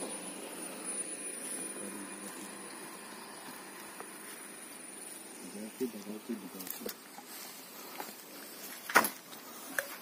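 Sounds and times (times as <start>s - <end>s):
faint high-pitched whine: 0.0s - 10.0s
outdoor background noise: 0.0s - 10.0s.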